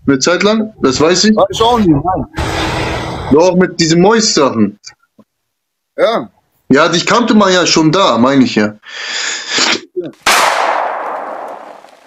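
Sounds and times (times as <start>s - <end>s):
crash-like hit sound effect: 2.4s - 3.4s.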